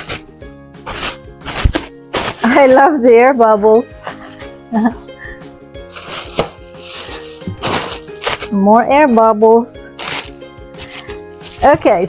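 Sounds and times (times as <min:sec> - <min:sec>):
soft background music: 0:00.0 - 0:12.0
plastic packing crinkling: 0:05.9 - 0:08.5, 0:10.0 - 0:11.8.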